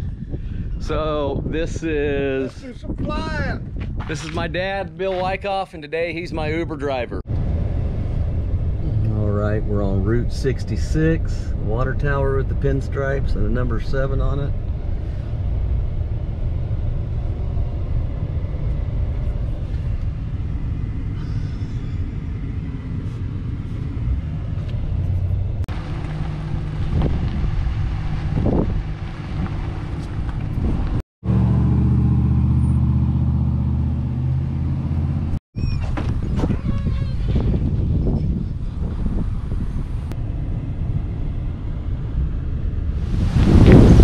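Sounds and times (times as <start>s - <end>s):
outdoor traffic: 0.0s - 1.8s, 2.4s - 44.0s
vehicle engine and road noise: 0.0s - 44.0s
loud low drone: 7.3s - 35.4s, 40.1s - 44.0s.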